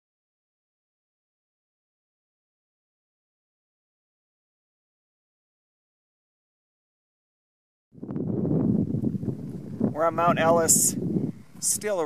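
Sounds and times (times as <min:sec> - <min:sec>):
wind buffeting microphone: 0:08.0 - 0:12.0.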